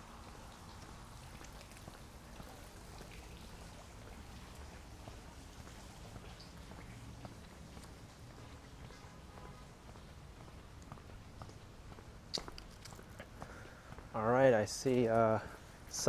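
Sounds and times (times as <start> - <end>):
water dripping: 0.0 - 13.7
fountain water trickling: 0.0 - 13.9.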